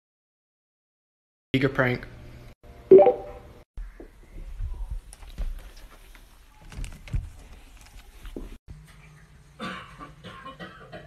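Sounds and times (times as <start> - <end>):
short electronic beep: 2.9 - 3.4.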